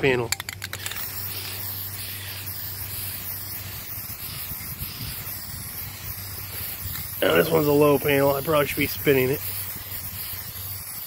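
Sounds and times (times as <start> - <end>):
spray paint can hissing: 0.3 - 11.0.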